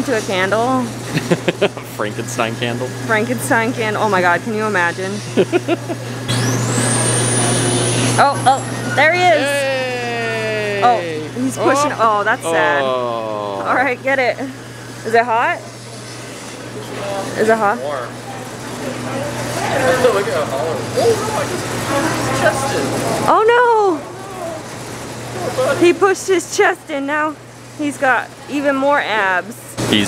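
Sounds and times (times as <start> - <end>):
low steady machine hum: 0.0 - 30.0
indistinct talking: 7.2 - 29.5.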